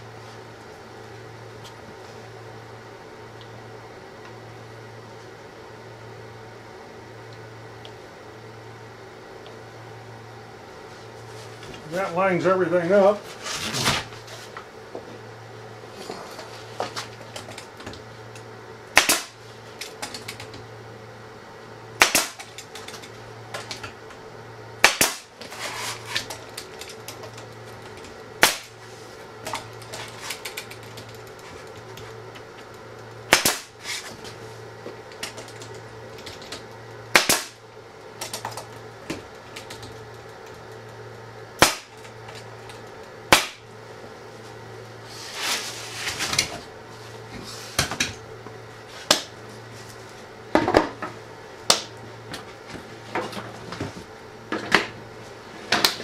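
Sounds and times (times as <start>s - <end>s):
steady low hum: 0.0s - 56.0s
pneumatic stapler shots: 19.0s - 19.4s, 22.0s - 22.5s, 24.8s - 25.3s, 28.4s - 28.8s, 33.3s - 34.0s, 37.1s - 37.6s.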